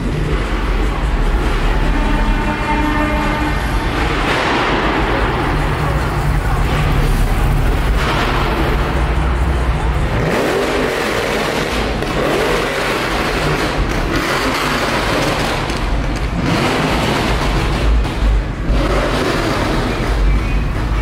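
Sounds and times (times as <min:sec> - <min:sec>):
music playing: 0:00.0 - 0:12.5
car engines revving: 0:00.0 - 0:21.0.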